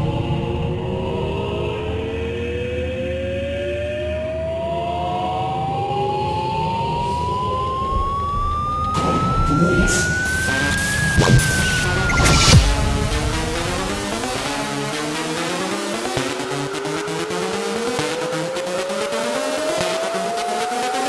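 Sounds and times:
noisy rush: 0.0 - 21.0
rising synth tone: 2.4 - 21.0
sharp percussion hits: 8.9 - 15.6.

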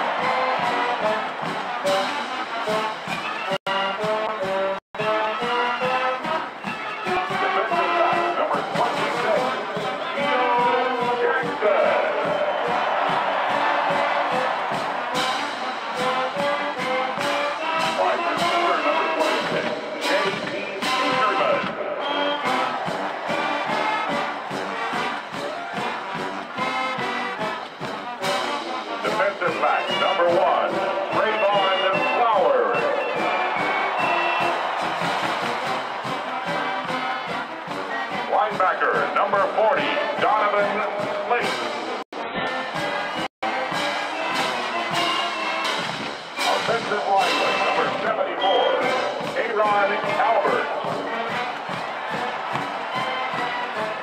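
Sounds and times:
marching band brass tune: 0.0 - 54.0
steady drum beat: 0.0 - 54.0.

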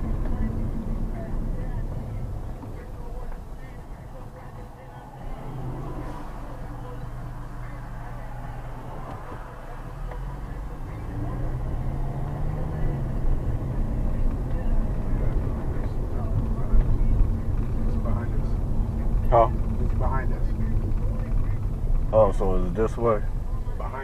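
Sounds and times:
car engine: 0.0 - 24.0
road noise inside car: 0.0 - 24.0.

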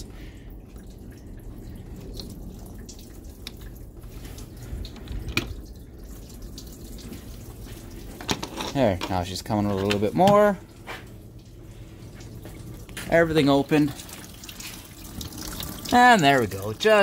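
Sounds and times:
coolant dripping and trickling: 0.0 - 17.0.

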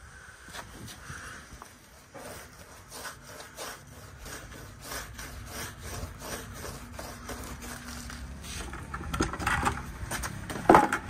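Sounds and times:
paintbrush scrubbing on concrete: 1.0 - 8.9.

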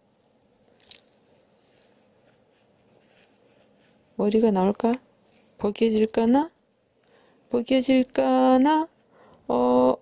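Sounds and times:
fabric rustling: 0.0 - 7.0.

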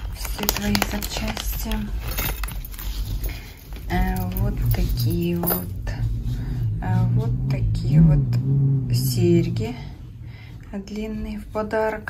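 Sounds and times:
plastic and foil packaging rustling: 0.0 - 5.9
earrings clinking: 0.0 - 6.0.

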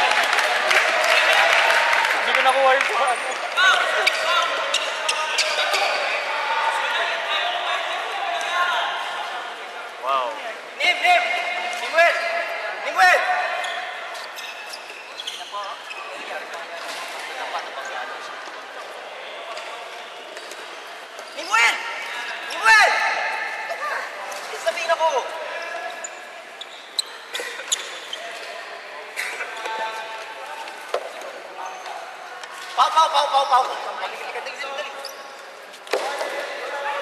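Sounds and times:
voices echoing in a hall: 0.0 - 37.0
shoes squeaking on wooden floor: 13.5 - 17.0, 24.8 - 28.7.

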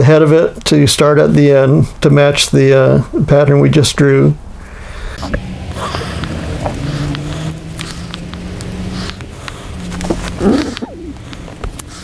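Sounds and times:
steady low hum: 4.3 - 12.0.

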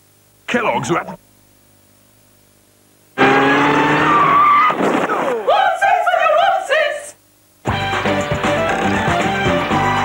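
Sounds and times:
wavering voice-like tone: 0.6 - 1.2
car engine revving with whine: 3.2 - 4.6
tyre screech: 3.2 - 4.8.

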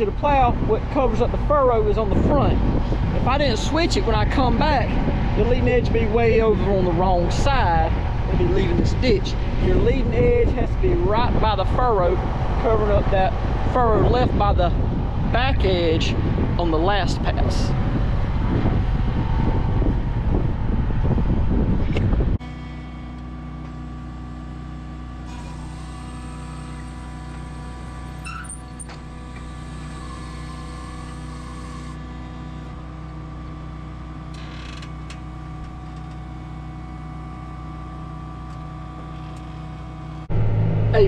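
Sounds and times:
tractor diesel engine running: 22.4 - 41.0.

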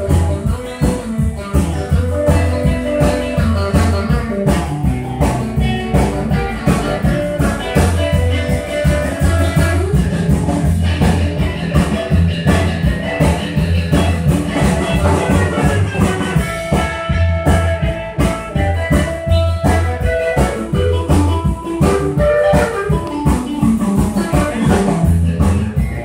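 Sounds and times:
drum kit steady beat: 0.0 - 26.0
electric guitar lead line: 0.0 - 26.0
walking upright bass: 0.0 - 26.0.

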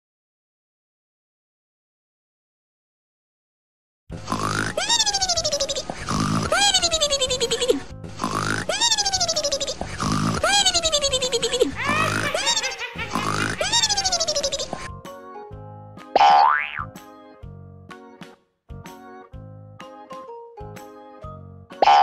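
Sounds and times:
cartoon pig snoring: 4.1 - 14.9.

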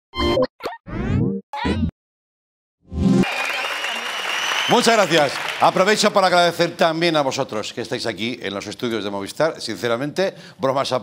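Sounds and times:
studio audience applause: 3.1 - 6.8.

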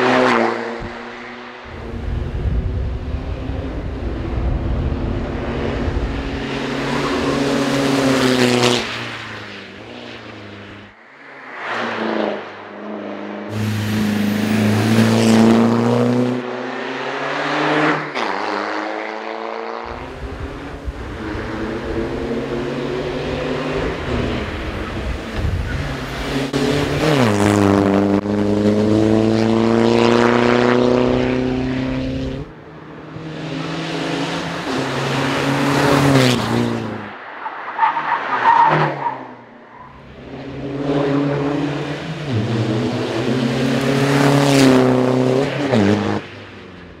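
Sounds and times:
race car engine accelerating: 13.5 - 18.8, 19.8 - 37.1.

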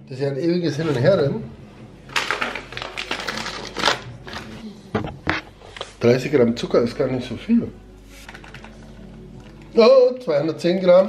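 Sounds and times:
paper bag rustling: 2.1 - 4.6.

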